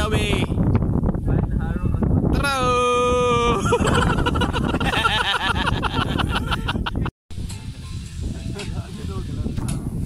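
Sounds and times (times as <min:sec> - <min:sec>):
steady low rumble: 0:03.6 - 0:10.0.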